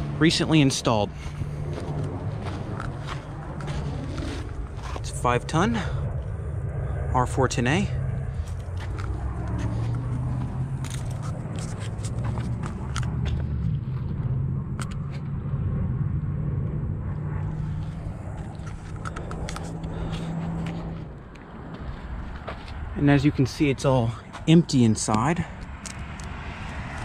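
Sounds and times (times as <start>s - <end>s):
low engine drone: 0.0s - 27.0s
light clicks and scrapes: 10.8s - 13.1s.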